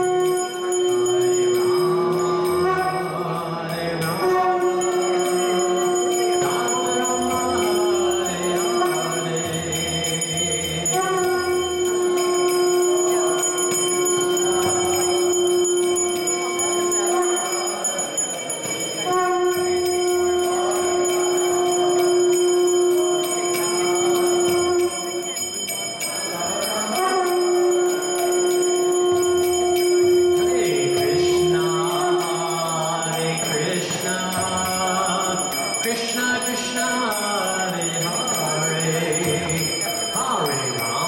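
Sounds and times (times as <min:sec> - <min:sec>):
conch shell blasts: 0:00.0 - 0:10.2, 0:10.8 - 0:18.0, 0:18.8 - 0:25.8, 0:26.8 - 0:33.6
bell ringing: 0:00.0 - 0:41.0.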